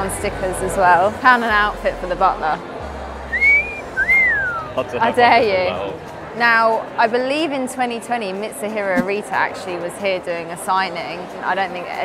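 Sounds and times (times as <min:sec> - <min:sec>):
person wolf whistling: 0:03.3 - 0:04.8.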